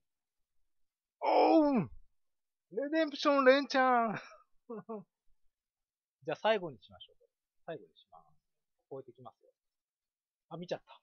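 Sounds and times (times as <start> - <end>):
person exclaiming ohh in surprise: 1.2 - 1.9.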